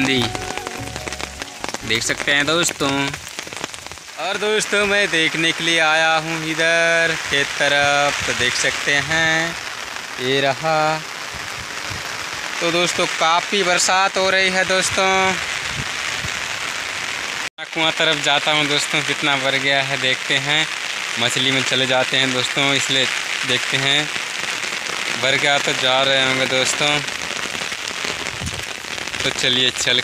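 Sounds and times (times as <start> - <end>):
man's voice: 0.0 - 3.2, 4.2 - 9.5, 17.6 - 24.1, 25.2 - 27.1, 29.2 - 30.0
heavy rain on umbrella: 0.0 - 30.0.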